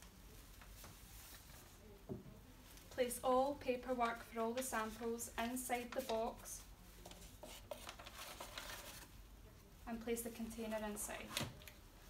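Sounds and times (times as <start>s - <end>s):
faint paper rustling: 0.0s - 9.3s.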